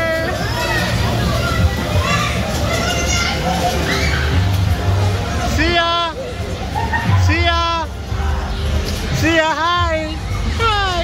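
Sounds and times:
children's voices and shouts: 0.0s - 5.6s.

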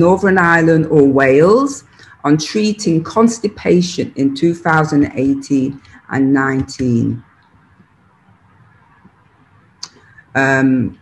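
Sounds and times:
faint microphone hiss: 0.0s - 11.0s.

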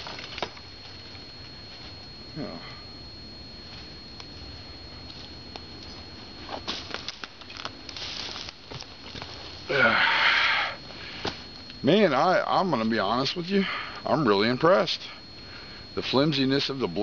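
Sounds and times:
rustling in dry leaves: 6.5s - 9.6s.

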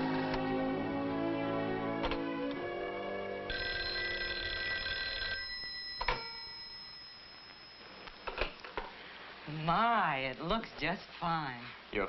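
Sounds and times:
telephone bell ringing: 3.5s - 8.6s.

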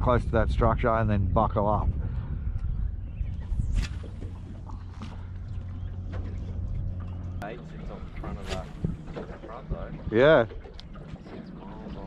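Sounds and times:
wind noise: 0.0s - 5.2s
water noise: 0.0s - 12.0s
boat motor humming: 2.4s - 12.0s.

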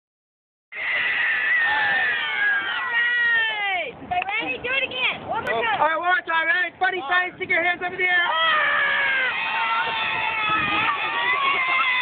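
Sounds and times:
young children cheering: 0.8s - 3.8s, 8.3s - 12.0s.

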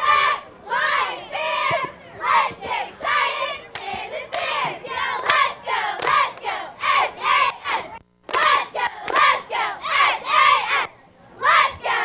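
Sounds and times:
cheerleaders chanting a cheer: 0.0s - 12.0s
sharp claps: 5.2s - 6.5s, 8.3s - 9.3s.

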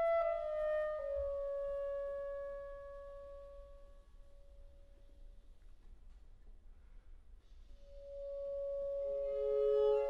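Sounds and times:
clarinet long note: 0.0s - 3.9s, 7.9s - 10.0s.

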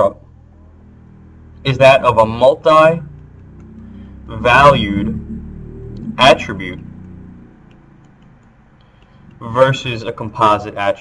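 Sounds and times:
low background hum: 0.0s - 11.0s
stylus tapping on tablet: 3.0s - 4.5s, 6.0s - 10.5s.

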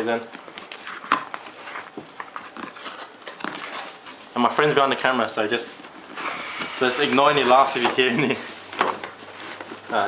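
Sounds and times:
cardboard box scraping and rustling: 6.2s - 10.0s.

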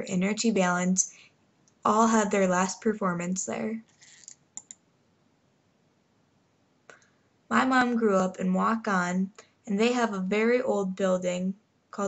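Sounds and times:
computer mouse clicks: 3.9s - 4.8s.

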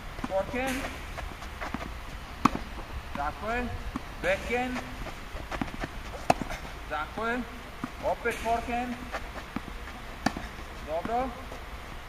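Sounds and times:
tennis racket hitting ball: 0.2s - 11.3s.

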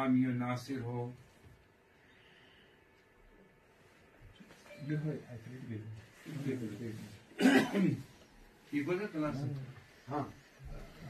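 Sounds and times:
loud cough: 7.4s - 8.0s.

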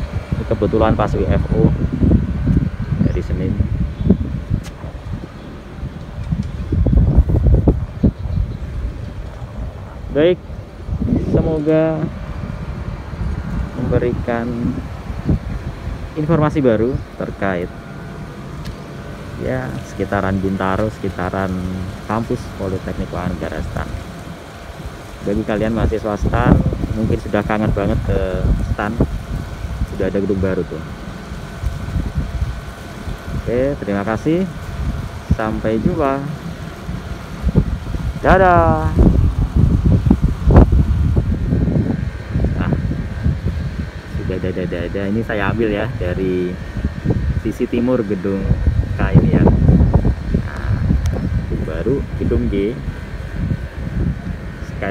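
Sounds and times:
wind buffeting microphone: 0.0s - 54.9s.

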